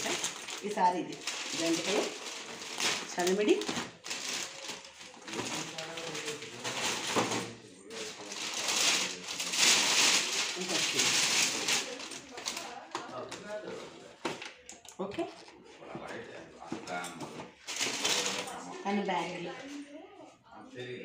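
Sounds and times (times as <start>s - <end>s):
plastic bags rustling: 0.0s - 19.7s.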